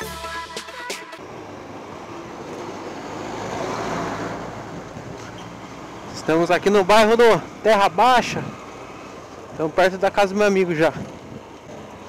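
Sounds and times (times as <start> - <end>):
low engine hum: 1.2 - 12.0
wind and road noise: 1.2 - 12.0.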